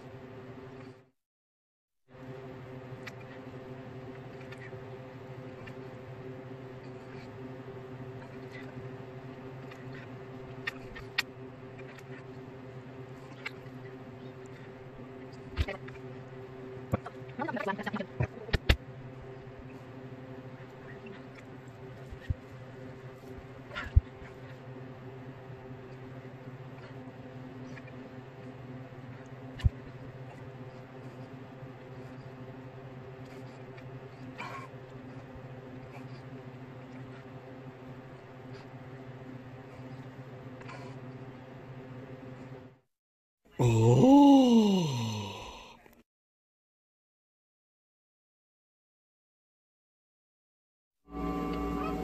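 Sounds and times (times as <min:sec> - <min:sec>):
steady tonal hum: 0:02.2 - 0:42.7, 0:51.1 - 0:52.0.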